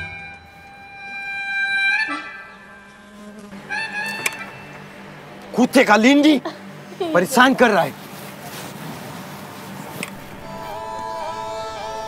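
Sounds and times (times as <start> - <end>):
background music note: 0.0 - 7.0, 10.1 - 12.0
low buzzing hum: 0.0 - 12.0.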